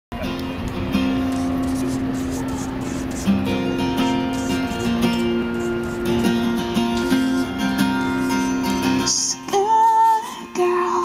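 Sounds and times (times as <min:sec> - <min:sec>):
acoustic guitar music: 0:00.1 - 0:11.0.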